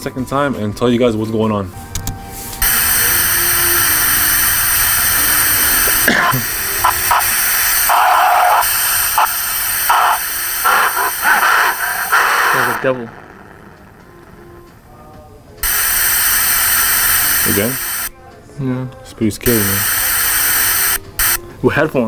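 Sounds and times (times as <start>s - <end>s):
glitchy bursts: 2.6s - 14.7s
static hiss: 2.6s - 14.8s, 15.6s - 18.1s, 19.5s - 21.4s.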